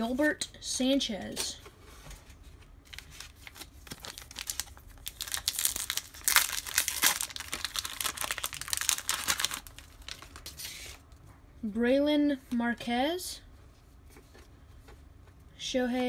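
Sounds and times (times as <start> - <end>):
foil wrapper tearing and crinkling: 2.9 - 11.0.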